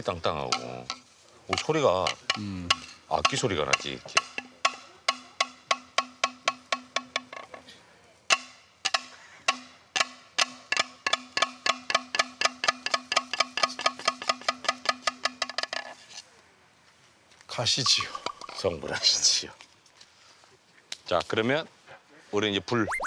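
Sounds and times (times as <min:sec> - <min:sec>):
bamboo knocking together: 0:00.4 - 0:07.6, 0:08.3 - 0:15.9.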